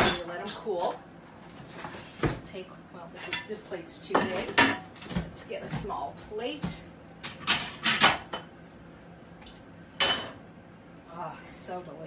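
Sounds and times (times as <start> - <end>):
dishes and cutlery clattering: 7.3 - 8.5.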